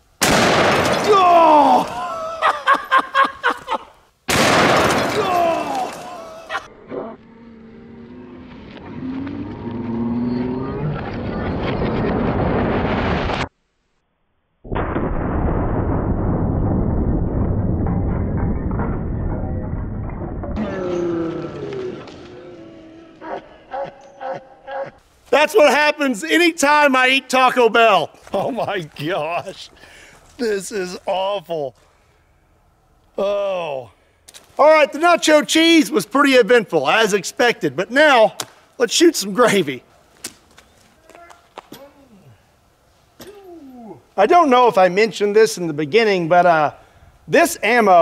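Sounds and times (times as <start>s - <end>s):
loud rifle shots: 0.2s - 1.2s, 4.3s - 5.3s
low steady rumbling: 14.8s - 20.8s.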